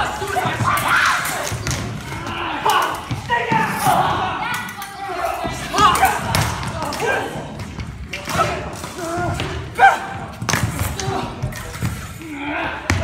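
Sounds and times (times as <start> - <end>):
actors shouting and crying out: 0.0 - 7.6, 8.2 - 13.0.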